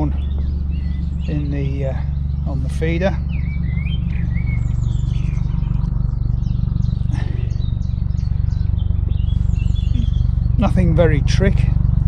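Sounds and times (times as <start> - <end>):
low engine drone: 0.0 - 12.0
small birds chirping: 0.0 - 12.0.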